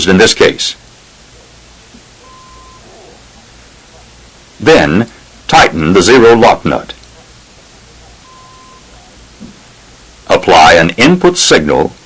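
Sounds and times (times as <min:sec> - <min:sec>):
tape hiss: 0:00.0 - 0:12.0
short faint beep: 0:02.2 - 0:02.9, 0:08.2 - 0:08.9.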